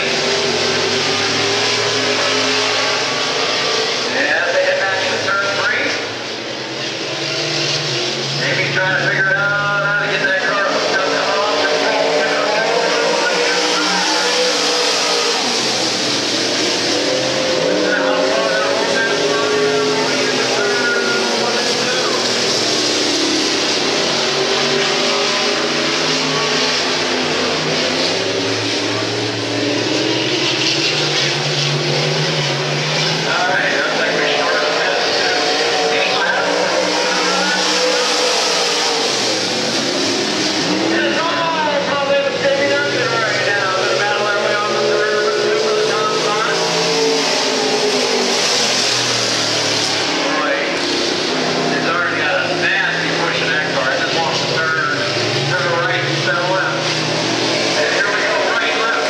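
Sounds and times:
race car engines racing: 0.0 - 59.0.

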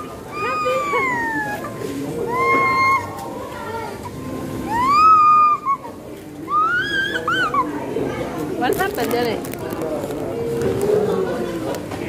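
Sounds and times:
toddler squealing: 0.3 - 3.2, 4.6 - 7.8.

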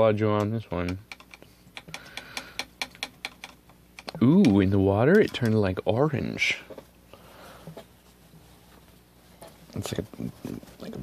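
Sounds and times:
rapid light sharp clicks: 0.4 - 5.6.

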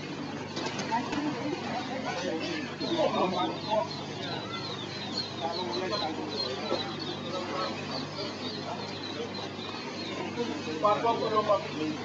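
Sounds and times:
birds chirping: 0.0 - 12.0
louder lower bird calls: 2.4 - 12.0.

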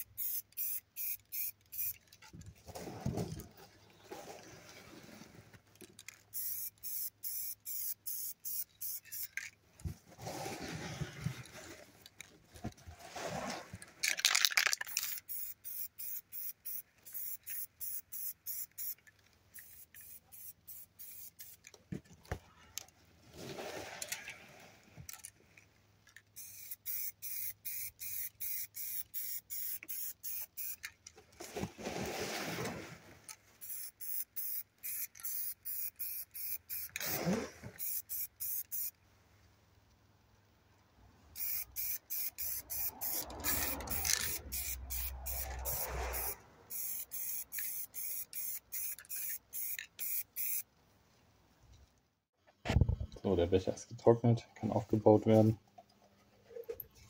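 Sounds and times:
aerosol spray can puffs: 6.3 - 9.4, 14.1 - 19.0, 19.6 - 21.7, 26.4 - 30.9, 33.6 - 38.9, 41.4 - 50.6.

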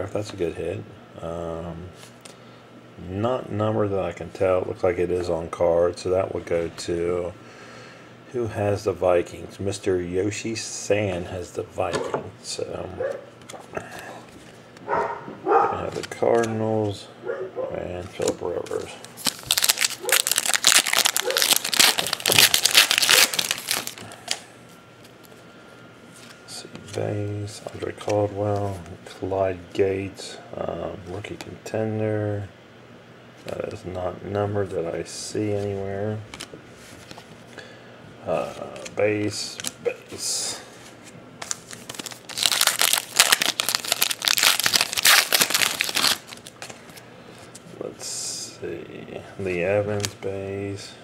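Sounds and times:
cards being handled: 15.8 - 17.0, 18.0 - 24.4, 35.4 - 37.5, 38.3 - 47.6, 49.8 - 50.3
foil wrapper tearing and crinkling: 18.7 - 24.4, 41.4 - 46.7.

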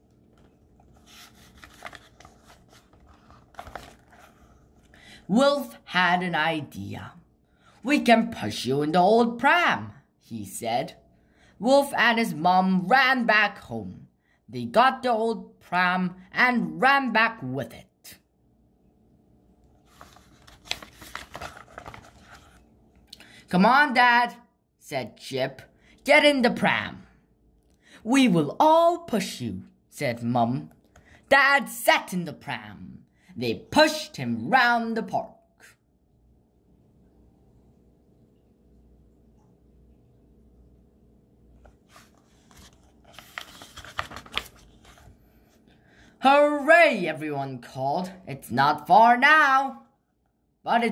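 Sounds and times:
paper page turning: 0.0 - 4.9, 19.8 - 22.6, 41.6 - 45.5
sharp paper crackles: 0.4 - 4.5, 19.8 - 22.6, 41.8 - 45.2.

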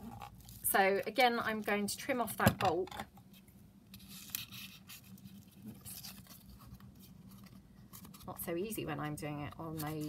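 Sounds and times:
faint paper rustling: 3.3 - 10.0.

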